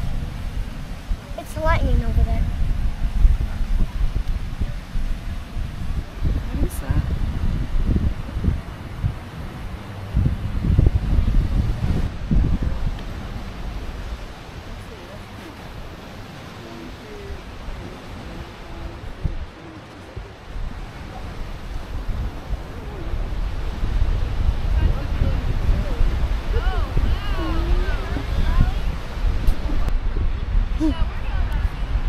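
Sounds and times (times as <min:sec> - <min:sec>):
surf washing: 0:00.0 - 0:32.0
wind buffeting microphone: 0:00.0 - 0:32.0.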